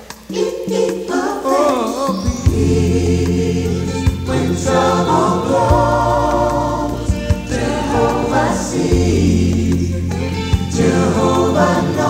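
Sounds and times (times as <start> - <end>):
drum beats: 0.0 - 12.0
gospel choir singing: 0.0 - 12.0
deep bass notes: 2.5 - 12.0.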